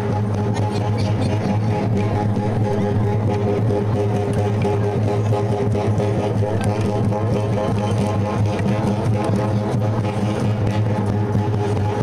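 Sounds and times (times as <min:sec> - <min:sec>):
hand drums playing melodic figure: 0:00.0 - 0:12.0
low drone: 0:00.0 - 0:12.0.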